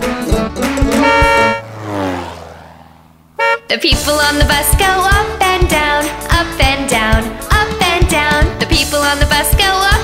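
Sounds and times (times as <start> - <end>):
bouncy children's music: 0.0 - 1.6, 3.7 - 10.0
cartoon bus horn honk: 0.3 - 1.7, 3.4 - 4.2.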